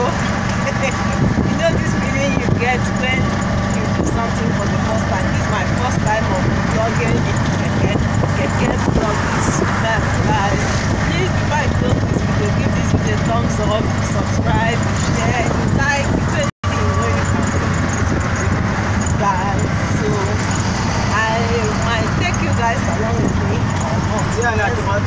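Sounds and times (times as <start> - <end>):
person's voice: 0.0 - 20.5, 21.1 - 25.0
auto-rickshaw engine: 0.0 - 25.0.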